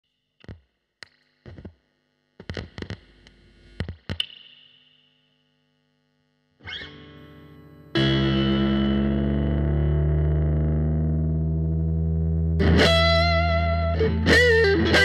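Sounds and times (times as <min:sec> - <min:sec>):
distorted electric guitar: 0:02.4 - 0:04.6, 0:06.6 - 0:15.0.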